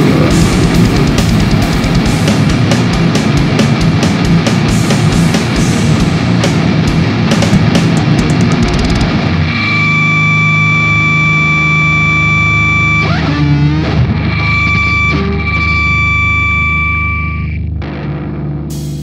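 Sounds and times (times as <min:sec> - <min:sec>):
distorted electric guitar ringing: 0:00.0 - 0:19.0
steady high tone: 0:09.4 - 0:17.7.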